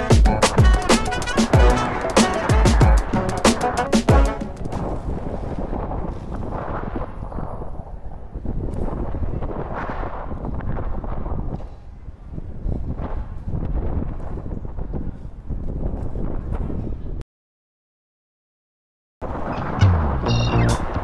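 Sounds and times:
wind buffeting microphone: 4.5 - 17.2.

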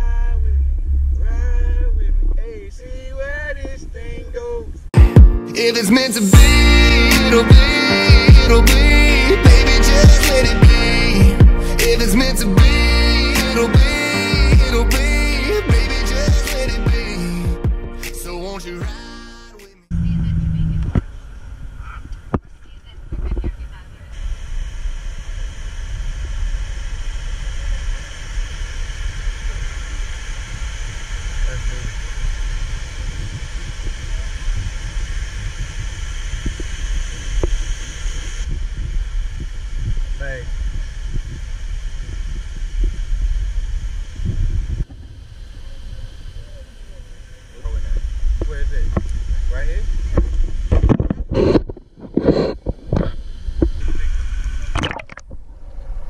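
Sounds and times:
indistinct voices: 0.0 - 4.8
wind buffeting microphone: 29.3 - 56.0.

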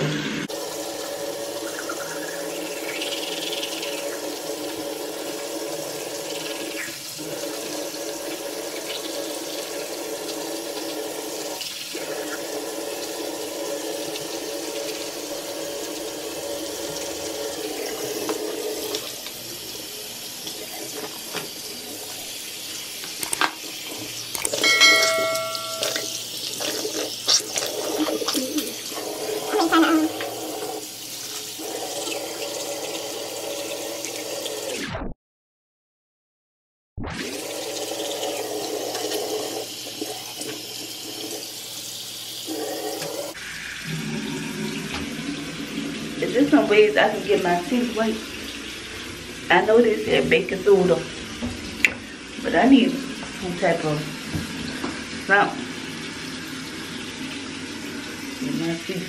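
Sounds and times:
sink tap running water: 0.0 - 34.8, 37.2 - 59.0
short pitched tone: 24.6 - 26.3.

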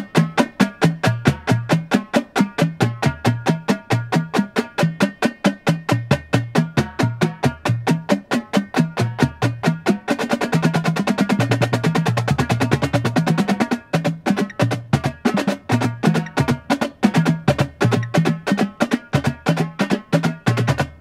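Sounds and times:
fast drum rolls: 0.0 - 21.0
marching drumline: 0.0 - 21.0.

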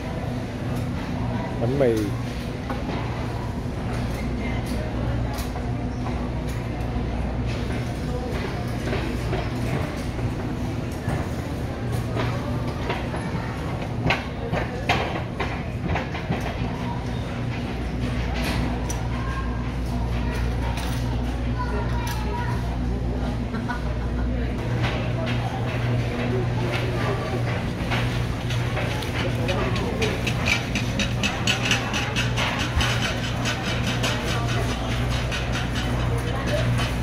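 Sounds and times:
shopping cart rolling: 24.6 - 37.0.

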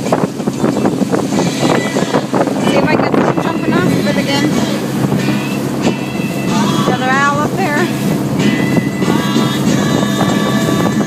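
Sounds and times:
motorboat engine running: 0.0 - 11.0
water rushing past hull: 0.0 - 11.0
wind buffeting microphone: 0.0 - 11.0.

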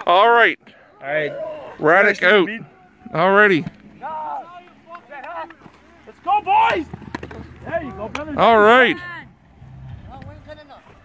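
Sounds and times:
distant voices talking: 0.7 - 11.0
low outdoor rumble: 1.7 - 11.0.

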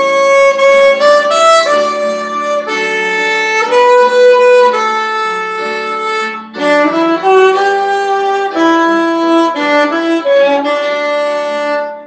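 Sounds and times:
solo violin hymn melody: 0.0 - 12.0.

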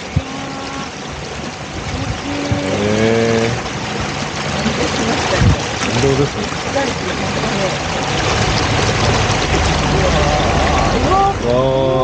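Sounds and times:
motorboat engine running: 0.0 - 12.0
water rushing along hull: 0.0 - 12.0.

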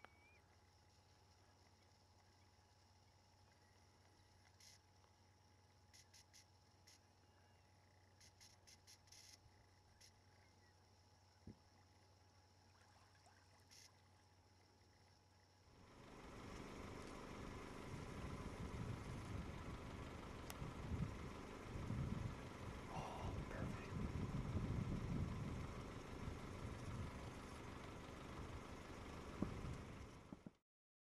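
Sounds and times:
faint hum: 0.0 - 30.6
idling vehicle engine rumble: 13.6 - 30.6.

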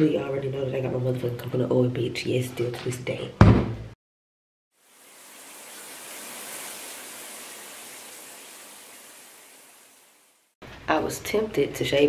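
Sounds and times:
shower running: 4.7 - 10.6.

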